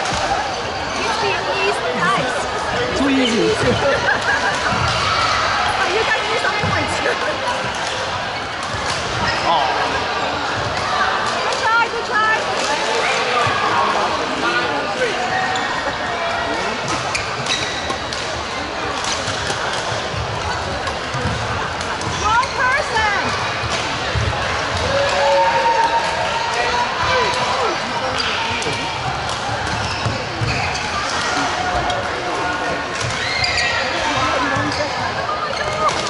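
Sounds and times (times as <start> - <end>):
crowd chattering in hall: 0.0 - 36.0
many voices: 0.0 - 36.0
shoes squeaking on court floor: 0.5 - 4.0, 16.8 - 23.7, 27.7 - 32.1, 33.0 - 36.0.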